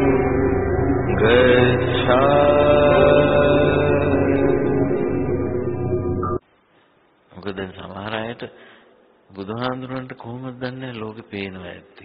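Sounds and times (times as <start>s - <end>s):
person chanting melodically: 0.0s - 5.9s
steady musical drone: 0.0s - 6.4s.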